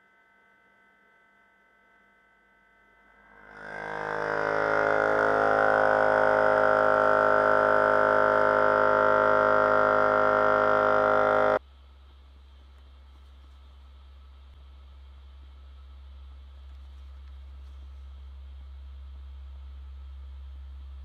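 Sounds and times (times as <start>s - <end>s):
engine buzzing drone: 2.9s - 11.6s.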